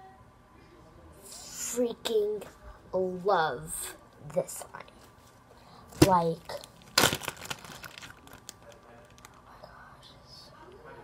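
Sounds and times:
plastic bag crinkling: 6.0 - 9.4.

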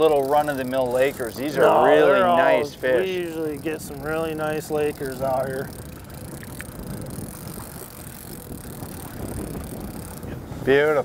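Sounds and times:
wind and water rumble: 0.0 - 11.0
faint clicks: 6.2 - 9.3.

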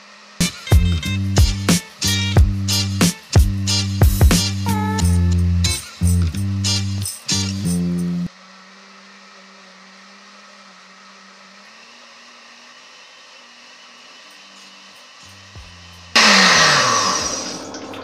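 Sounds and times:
blender motor running: 0.0 - 5.7, 8.3 - 18.0.

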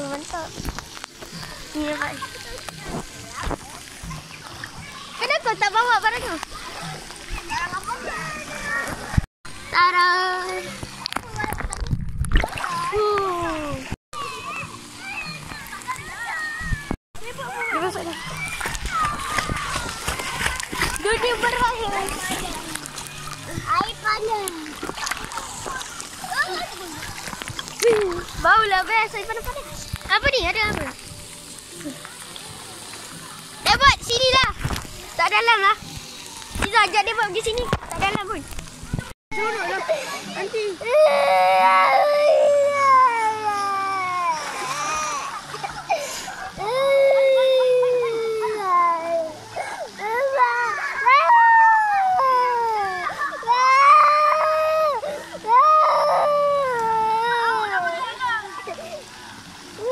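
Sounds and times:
pool water splashing: 0.0 - 59.9
children calling out: 39.4 - 59.1.

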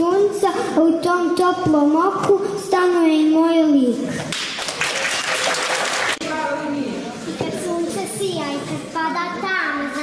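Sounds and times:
audience clapping: 4.3 - 6.2.

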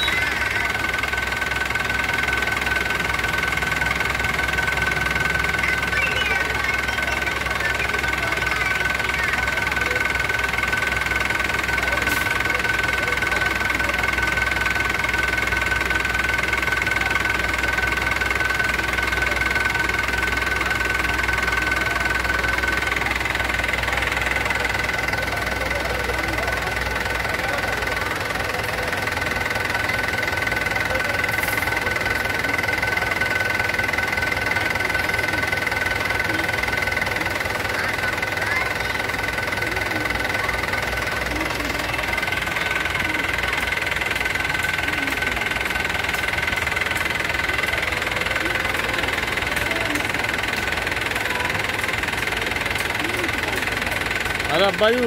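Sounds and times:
diesel tractor engine idling: 0.0 - 55.0.

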